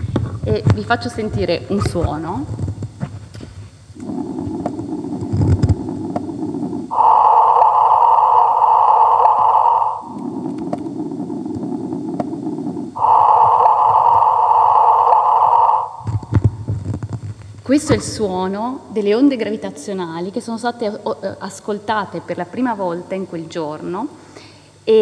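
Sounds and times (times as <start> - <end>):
hissing tone over loudspeakers: 0.0 - 25.0.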